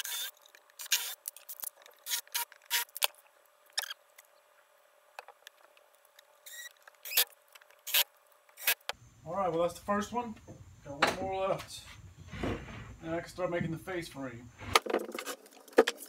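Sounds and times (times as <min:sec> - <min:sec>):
cordless drill driving screws: 0:00.0 - 0:01.2.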